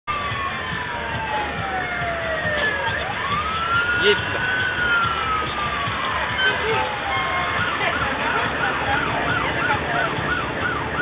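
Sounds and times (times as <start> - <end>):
siren wailing: 0.1 - 11.0.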